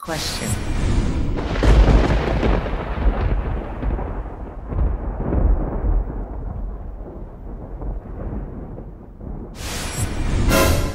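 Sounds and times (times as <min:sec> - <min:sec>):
low rumbling tail: 0:00.4 - 0:10.9
deep cinematic boom: 0:00.5 - 0:10.9.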